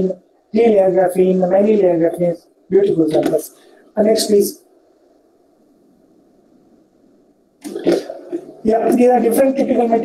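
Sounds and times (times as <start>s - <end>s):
faint microphone hiss: 0.0s - 10.0s.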